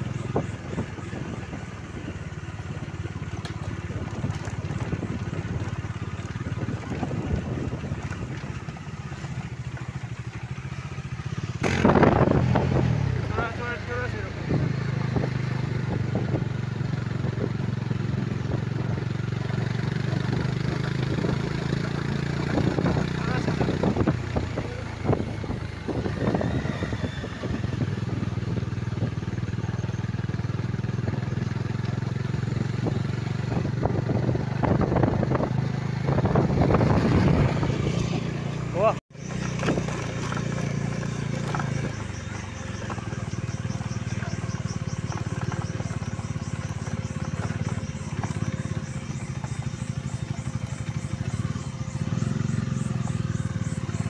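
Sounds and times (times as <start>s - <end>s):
motorcycle engine running: 0.0s - 54.0s
road and wind noise: 0.0s - 54.0s.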